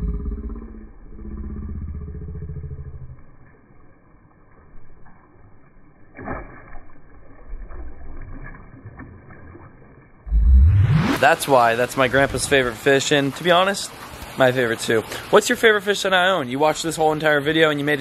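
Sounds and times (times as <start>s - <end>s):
fish splashing at water surface: 4.4s - 15.5s.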